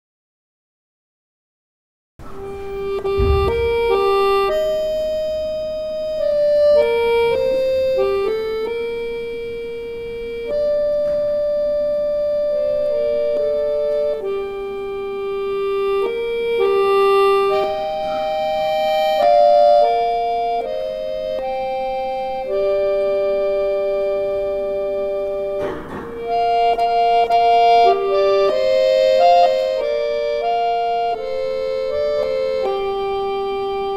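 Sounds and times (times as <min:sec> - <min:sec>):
low thump: 0:02.2 - 0:05.3, 0:25.6 - 0:26.3
button accordion chords: 0:02.2 - 0:33.9.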